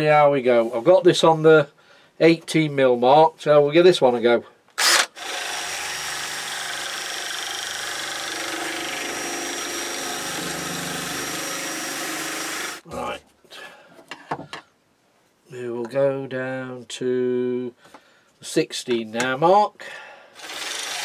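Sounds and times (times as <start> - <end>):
cordless drill shaving wood: 4.8 - 12.8, 20.4 - 21.0.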